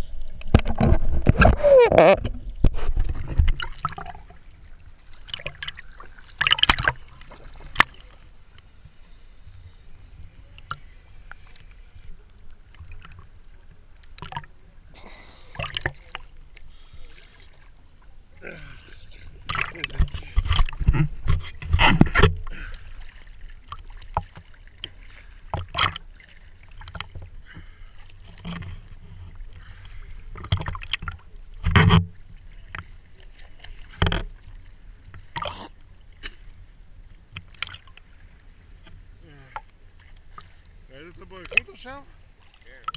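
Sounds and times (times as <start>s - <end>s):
sea water splashing: 0.0s - 42.9s
sharp splashes: 5.0s - 8.2s.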